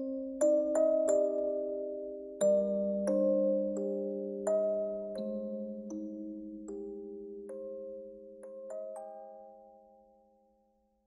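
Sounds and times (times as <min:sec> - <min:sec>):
music box bell-like notes: 0:00.0 - 0:10.5.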